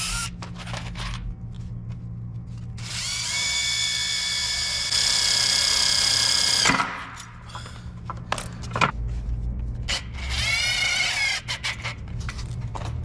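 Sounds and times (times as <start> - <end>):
drill motor whine: 0.0 - 0.4, 2.8 - 6.7.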